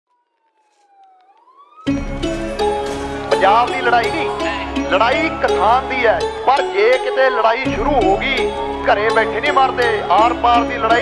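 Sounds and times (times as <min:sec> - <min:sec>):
siren-like wailing tone: 0:00.1 - 0:03.3
loud music: 0:01.9 - 0:11.0.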